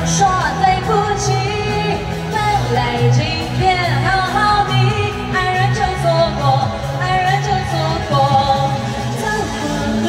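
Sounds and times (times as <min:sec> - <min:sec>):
amplified backing music: 0:00.0 - 0:10.0
woman singing into microphone: 0:00.0 - 0:10.0.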